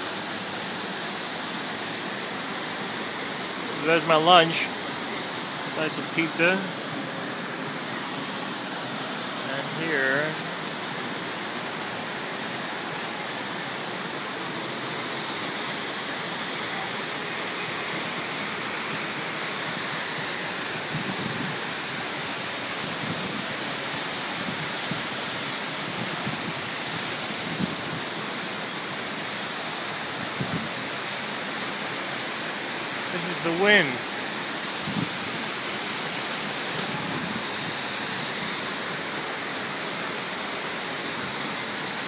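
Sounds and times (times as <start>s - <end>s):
waterfall rushing and splashing: 0.0s - 42.0s.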